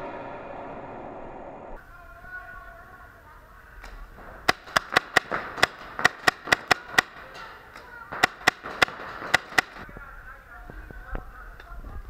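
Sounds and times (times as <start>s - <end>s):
paintball marker firing: 3.8s - 9.8s.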